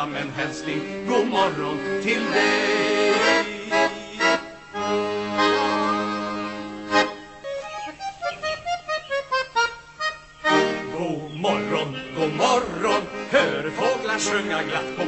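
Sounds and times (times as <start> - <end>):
button accordion playing: 0.0 - 15.0.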